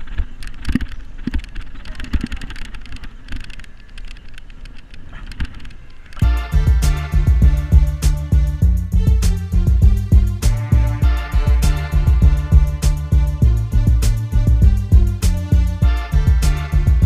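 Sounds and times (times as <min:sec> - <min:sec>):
low wind rumble: 0:05.8 - 0:17.0
background music with steady beat: 0:06.2 - 0:17.0.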